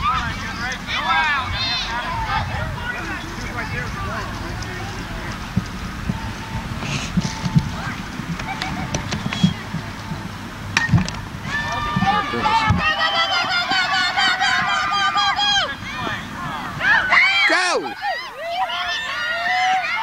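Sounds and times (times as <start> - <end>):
background chatter: 0.0 - 20.0
bat hitting ball: 10.7 - 11.2
high-pitched voices shouting and cheering: 11.4 - 20.0.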